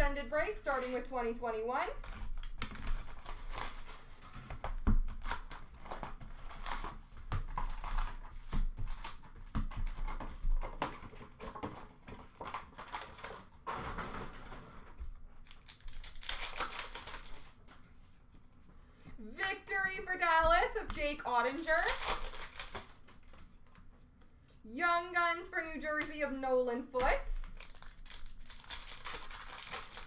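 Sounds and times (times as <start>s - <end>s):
plastic wrapping crinkling: 0.3s - 18.2s, 20.8s - 24.1s, 27.4s - 30.0s.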